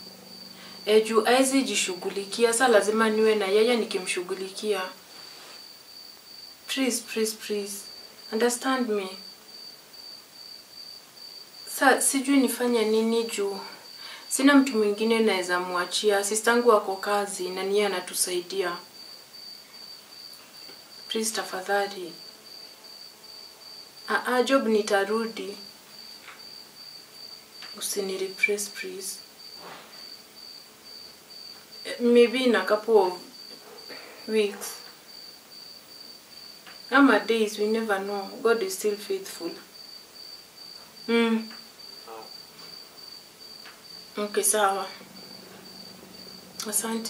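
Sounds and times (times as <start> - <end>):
cricket trilling: 0.0 - 47.0.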